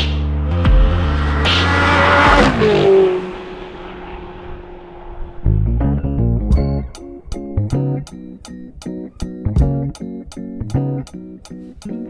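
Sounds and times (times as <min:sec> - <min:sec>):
low electronic music drone: 0:00.0 - 0:11.4
car driving past: 0:00.3 - 0:06.4.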